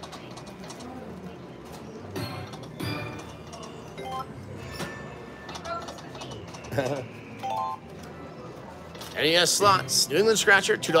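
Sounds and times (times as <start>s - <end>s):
casino background hum: 0.0s - 11.0s.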